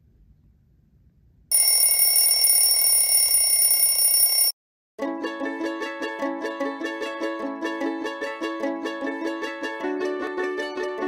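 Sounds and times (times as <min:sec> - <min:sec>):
alarm clock bell ringing: 0:01.5 - 0:04.6.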